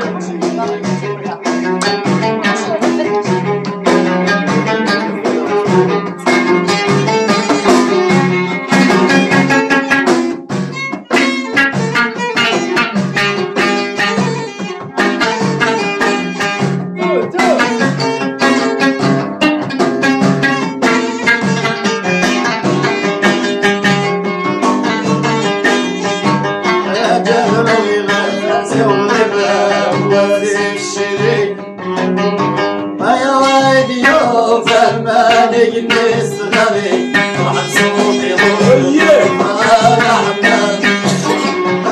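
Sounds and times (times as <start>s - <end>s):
man singing: 0.0s - 6.5s, 17.0s - 17.8s, 26.8s - 31.7s, 33.0s - 41.9s
frame drums: 0.0s - 41.9s
plucked lute: 0.0s - 41.9s.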